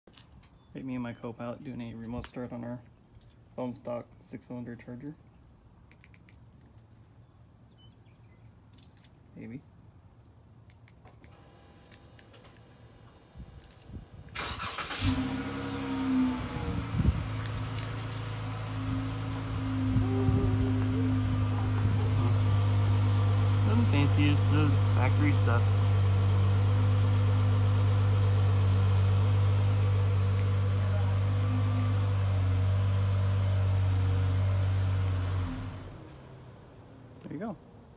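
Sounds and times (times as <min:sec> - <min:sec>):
car engine idling: 0:14.4 - 0:37.1
low rumble: 0:16.1 - 0:24.0.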